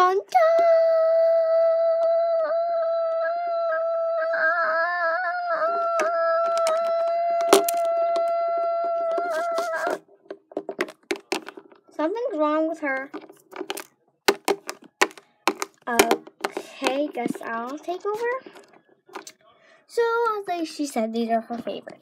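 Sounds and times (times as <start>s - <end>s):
child singing a long note: 0.0s - 7.4s
small clicks and knocks: 5.8s - 8.3s, 8.9s - 11.9s, 13.0s - 19.3s.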